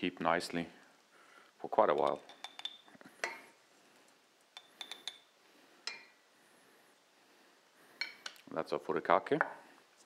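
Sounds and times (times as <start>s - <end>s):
metal spoon clinking on bowl and jar: 1.9s - 3.4s, 4.6s - 5.3s.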